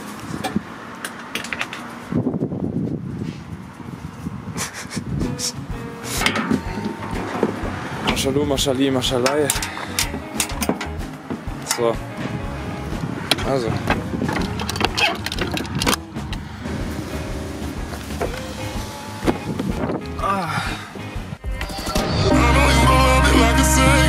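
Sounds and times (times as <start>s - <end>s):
loud metal clunk: 6.1s - 8.2s
door locking bar being worked: 14.3s - 16.0s.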